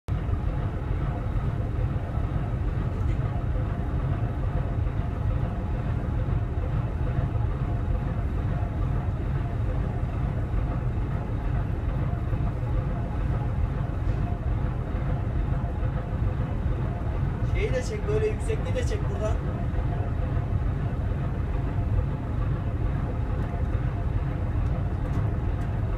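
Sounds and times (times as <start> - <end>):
ship engine drone: 0.1 - 25.9.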